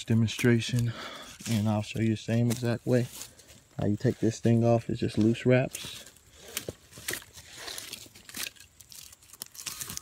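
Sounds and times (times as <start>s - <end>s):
rope scraping over bark: 0.0s - 10.0s.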